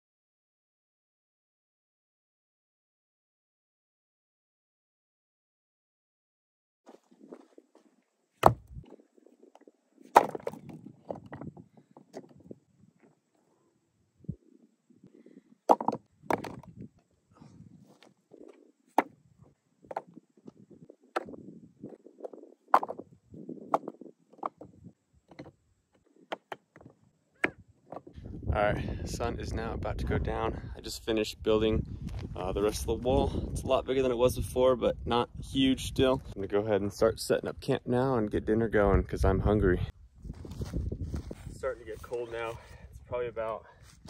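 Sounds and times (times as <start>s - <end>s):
stones clacking together: 8.4s - 13.2s, 15.7s - 16.9s, 19.9s - 28.2s
footsteps scuffing on rocky ground: 40.2s - 42.8s, 43.8s - 44.0s.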